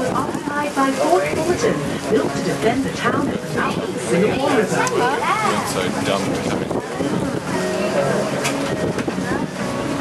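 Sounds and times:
boat engine running: 0:00.0 - 0:10.0
faint voices: 0:00.0 - 0:10.0
wind on microphone: 0:00.0 - 0:10.0.

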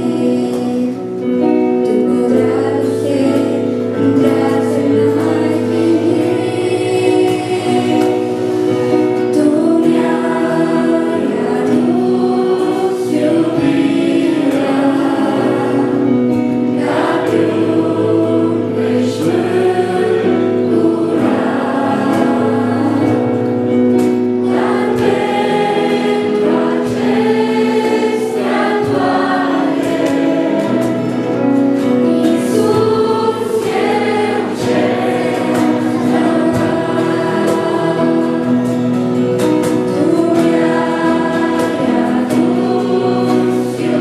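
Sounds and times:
girls singing a duet: 0:00.0 - 0:44.0
sustained accompaniment chords: 0:00.0 - 0:44.0.

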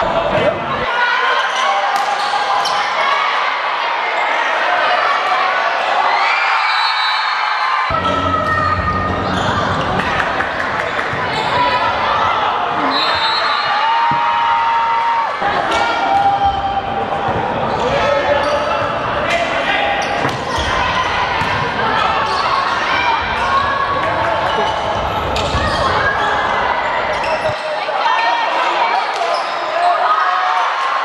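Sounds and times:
referee's whistle: 0:12.8 - 0:13.8.

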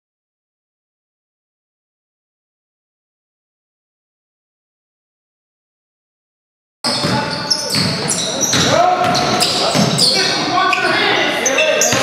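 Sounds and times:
players' voices echoing: 0:06.9 - 0:12.0
sneaker squeaks: 0:06.9 - 0:12.0
basketball bouncing on hardwood: 0:07.0 - 0:10.0.

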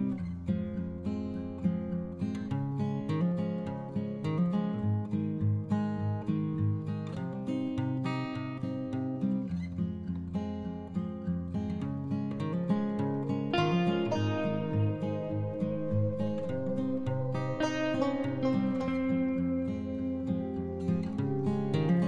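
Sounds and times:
acoustic guitar music: 0:00.0 - 0:22.0.

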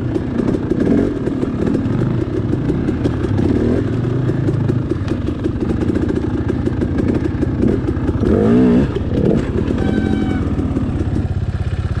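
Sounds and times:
dirt bike engine running: 0:00.0 - 0:12.0.

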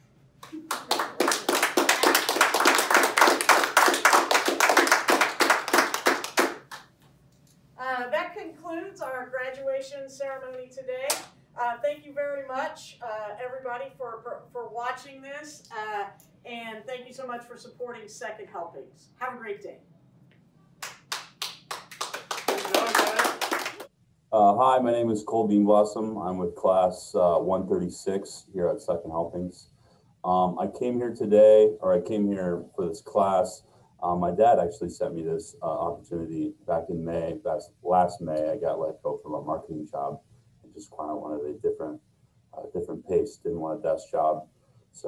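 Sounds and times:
people clapping: 0:00.4 - 0:07.0, 0:20.8 - 0:23.9.

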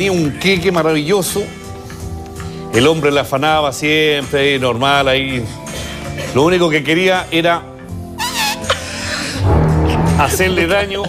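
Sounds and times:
background music with sustained tones: 0:00.0 - 0:11.0
high-pitched cat-like squeal: 0:08.2 - 0:08.8.

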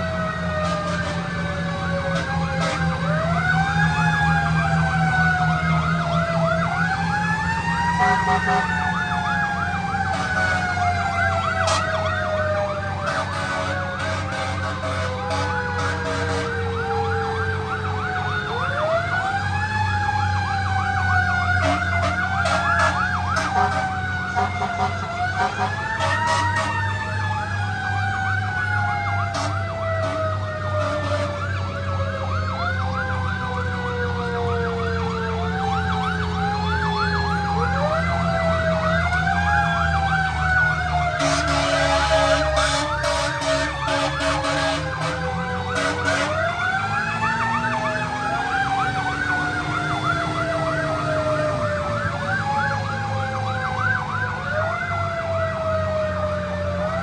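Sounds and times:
wavering siren tone: 0:00.0 - 0:57.0
short horn blasts: 0:13.1 - 0:16.6, 0:41.2 - 0:45.2, 0:45.8 - 0:46.4.

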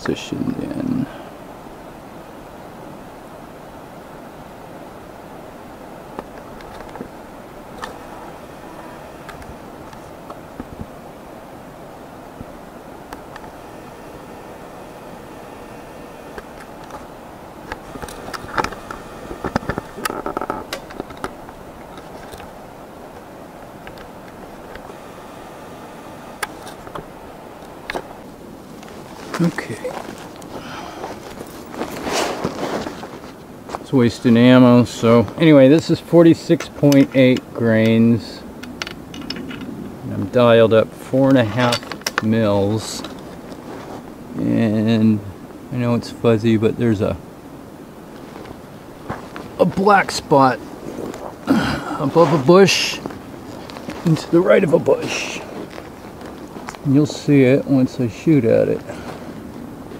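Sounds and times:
background hiss: 0:00.0 - 0:59.9
bumps and rubbing: 0:12.4 - 0:33.9
camera rig handling clicks and knocks: 0:38.6 - 0:39.7.

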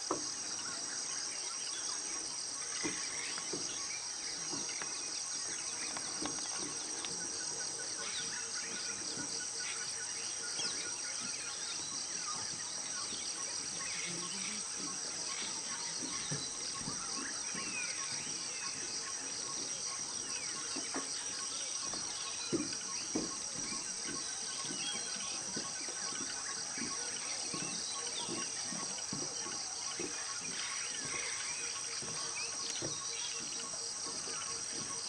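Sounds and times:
insects chorus: 0:00.0 - 0:35.0
bird calls and chirps: 0:00.1 - 0:35.0.

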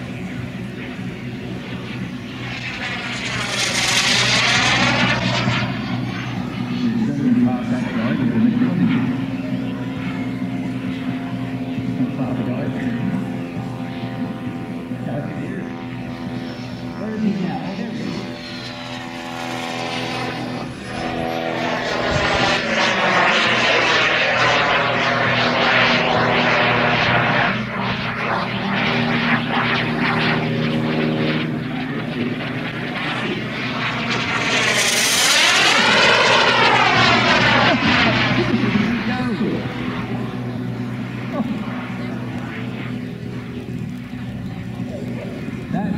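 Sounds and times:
model jet turbine whine: 0:00.0 - 0:45.9.

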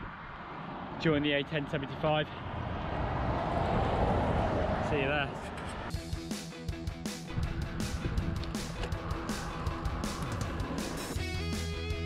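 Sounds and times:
vehicle passing on road: 0:00.0 - 0:06.0, 0:07.3 - 0:11.2.

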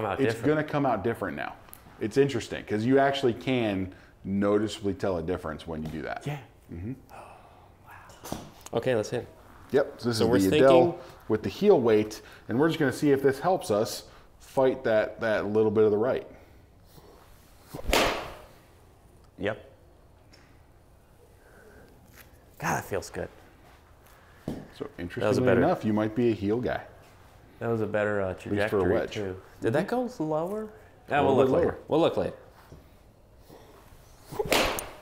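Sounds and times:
golf club striking ball: 0:17.8 - 0:18.5, 0:34.4 - 0:35.0.

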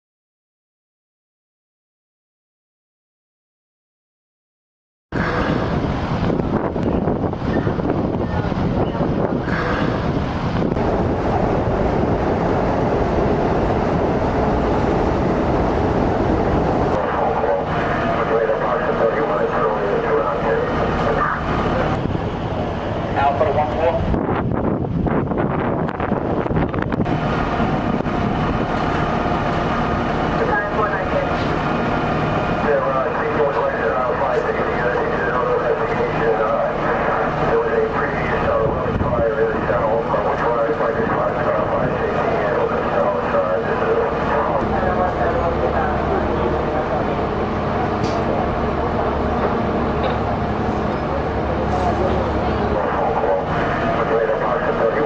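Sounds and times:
diesel engines low rumble: 0:05.1 - 0:55.0
indistinct voices: 0:05.2 - 0:05.9, 0:06.8 - 0:24.2, 0:27.1 - 0:55.0.

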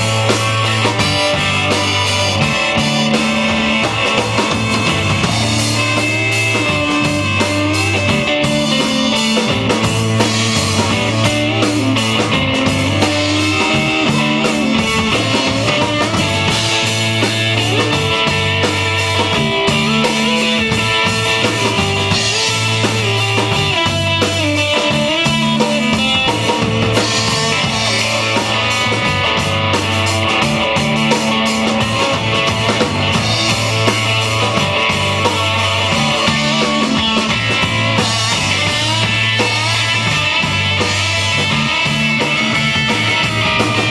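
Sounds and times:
drum kit: 0:00.0 - 0:43.9
electric bass line: 0:00.0 - 0:43.9
electric guitar melody: 0:00.0 - 0:43.9.

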